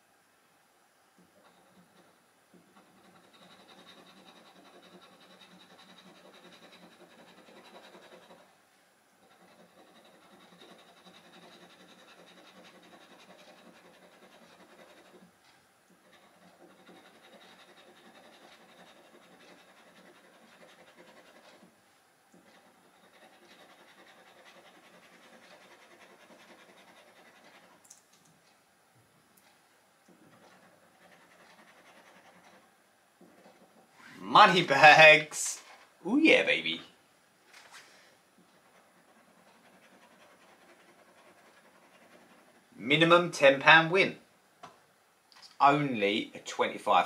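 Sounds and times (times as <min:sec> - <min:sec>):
metal scratcher scraping scratchcard: 0:02.7 - 0:08.5, 0:09.2 - 0:15.3, 0:15.9 - 0:21.7, 0:22.4 - 0:28.0, 0:30.1 - 0:36.9, 0:38.5 - 0:44.2.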